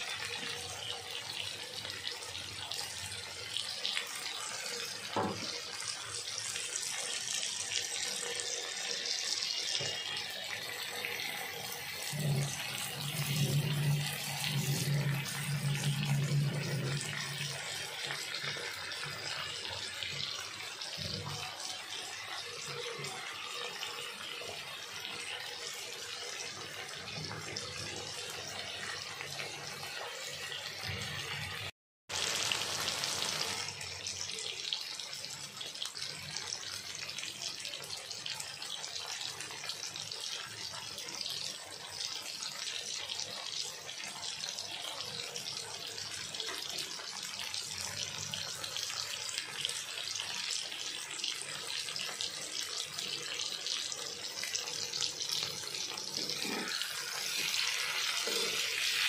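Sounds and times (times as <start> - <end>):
food sizzling in a wok: 0.0 - 59.0.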